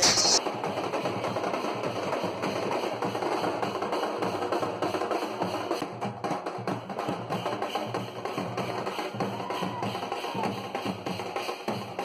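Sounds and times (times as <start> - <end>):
crowd noise: 0.0 - 0.4.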